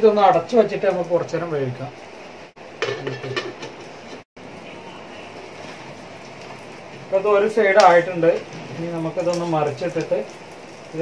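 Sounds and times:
omelette sizzling in pan: 0:00.0 - 0:11.0.

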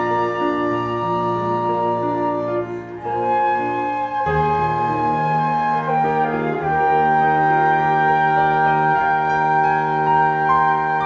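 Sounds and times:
cello playing sustained notes: 0:00.0 - 0:11.0
flutes playing sustained notes: 0:00.0 - 0:11.0.

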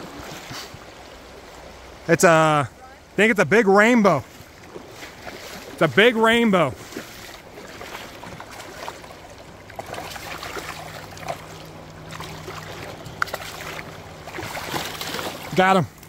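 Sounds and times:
faint splashes: 0:00.0 - 0:02.1, 0:04.0 - 0:16.0
river water rushing over cobbles: 0:00.0 - 0:16.0.

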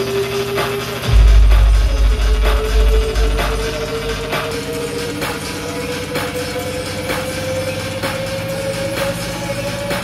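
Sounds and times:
bass-heavy electronic music: 0:00.0 - 0:10.0.

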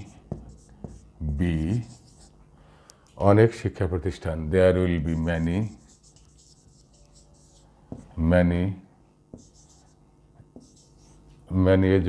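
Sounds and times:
marker writing on whiteboard: 0:00.0 - 0:02.3, 0:05.1 - 0:08.2, 0:09.3 - 0:11.2.

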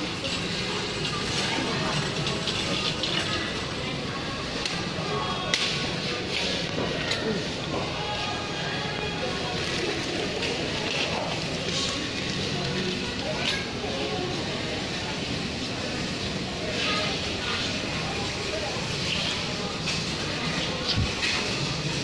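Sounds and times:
shopping trolley wheels rattling: 0:00.0 - 0:04.6, 0:08.7 - 0:22.0
indistinct shoppers' voices: 0:00.0 - 0:22.0.

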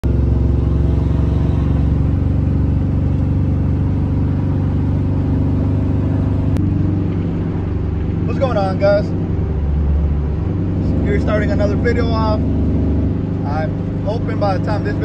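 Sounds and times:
road noise: 0:00.0 - 0:15.0
truck engine drone: 0:00.0 - 0:15.0.

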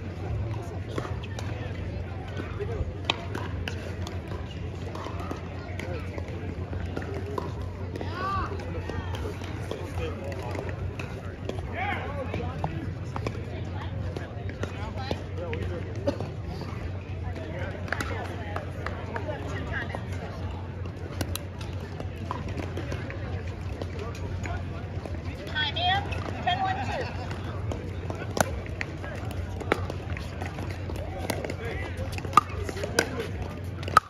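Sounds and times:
crowd chatter: 0:00.0 - 0:34.0.

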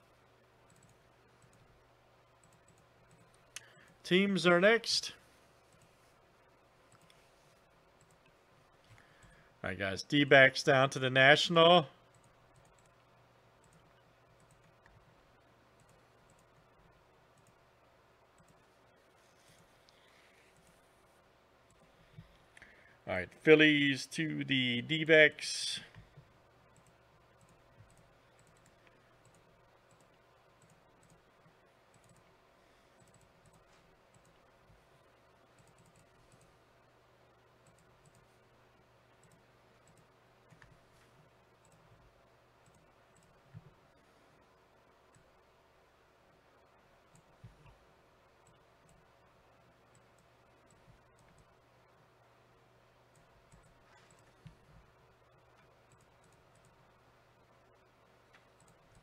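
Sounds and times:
computer mouse clicks: 0:00.6 - 0:01.7, 0:02.4 - 0:04.0, 0:05.7 - 0:06.0, 0:06.9 - 0:07.2, 0:08.0 - 0:09.4, 0:12.1 - 0:13.0, 0:13.6 - 0:15.0, 0:15.8 - 0:17.6, 0:18.4 - 0:18.7, 0:19.5 - 0:20.8, 0:25.9 - 0:32.3, 0:33.0 - 0:34.8, 0:35.5 - 0:36.6, 0:37.6 - 0:38.3, 0:39.2 - 0:42.0, 0:42.6 - 0:43.8, 0:49.9 - 0:51.6, 0:53.1 - 0:56.8, 0:58.3 - 0:59.0.

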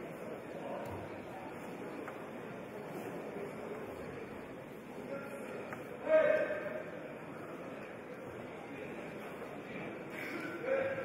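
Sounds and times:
sports hall background noise: 0:00.0 - 0:11.0.

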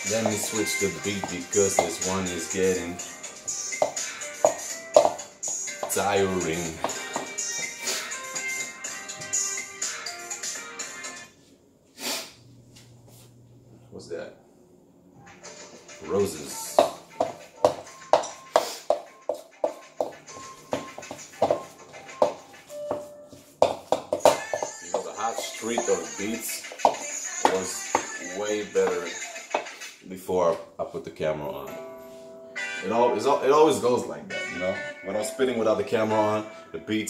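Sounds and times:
person's voice over beat: 0:00.0 - 0:03.0, 0:05.8 - 0:07.1, 0:16.1 - 0:17.0, 0:24.3 - 0:29.6
hip-hop beat with guitar: 0:00.0 - 0:11.0, 0:24.2 - 0:30.0.

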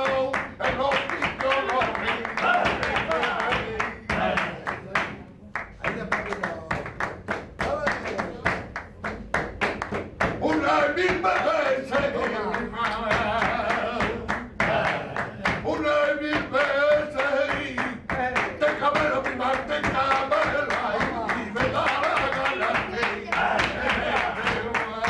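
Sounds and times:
man singing: 0:00.0 - 0:04.7, 0:10.4 - 0:25.0
men clapping hands in rhythm: 0:00.0 - 0:25.0.

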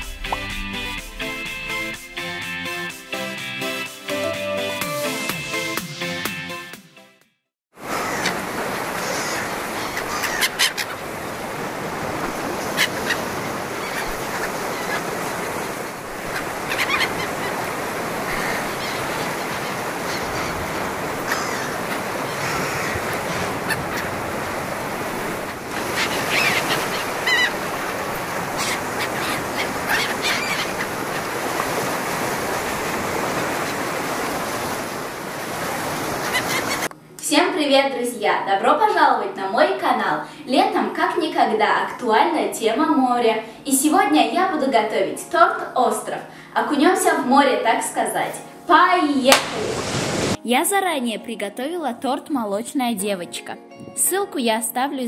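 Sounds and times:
sea surf: 0:00.0 - 0:05.8, 0:07.8 - 0:36.9, 0:49.2 - 0:50.4.

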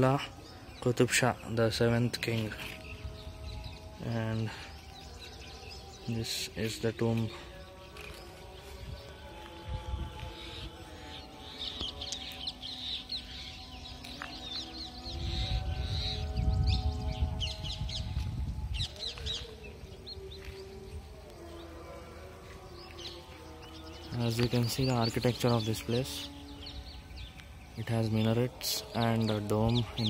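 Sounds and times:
birds chirping: 0:00.0 - 0:30.0
wind rumble on microphone: 0:02.4 - 0:06.0, 0:08.1 - 0:11.9, 0:14.3 - 0:21.4.

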